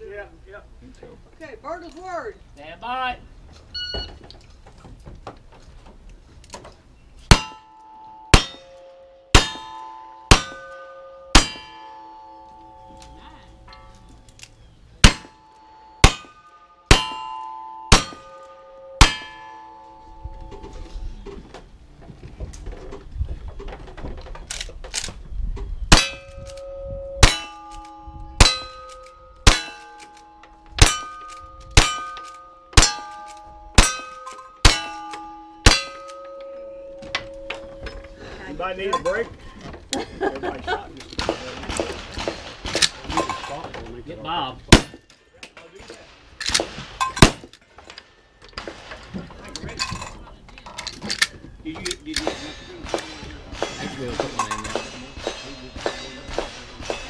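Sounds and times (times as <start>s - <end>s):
steel target ringing clang: 7.3s - 14.2s, 15.0s - 21.0s, 25.9s - 38.3s
gunshots: 41.2s - 43.3s, 44.7s - 45.0s, 46.0s - 47.5s, 52.2s - 57.0s.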